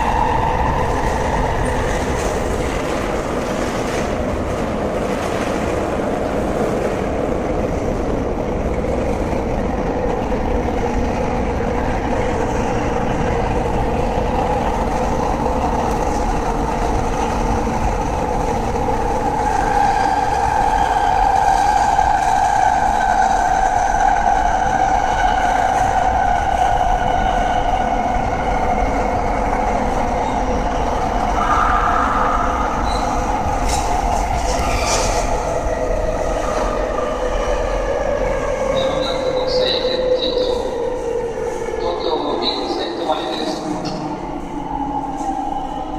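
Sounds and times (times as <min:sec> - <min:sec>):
train wheel and rail rumble: 0:00.0 - 0:45.9.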